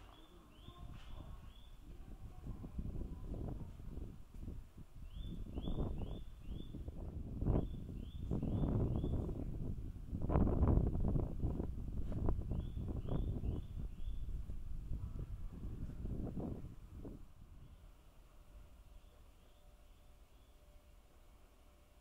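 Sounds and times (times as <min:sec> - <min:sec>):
wind buffeting microphone: 0:00.0 - 0:18.9.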